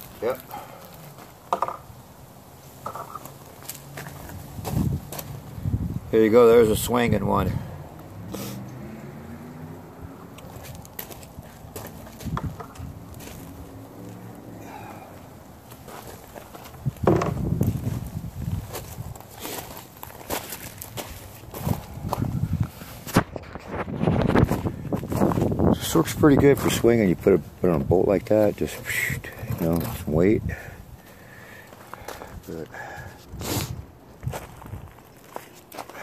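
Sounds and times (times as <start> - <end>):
handling clicks and knocks: 1.5 - 1.9, 10.4 - 12.9, 17.0 - 17.4
footsteps crunching on gravel: 2.9 - 5.4, 10.3 - 30.2, 31.0 - 36.0.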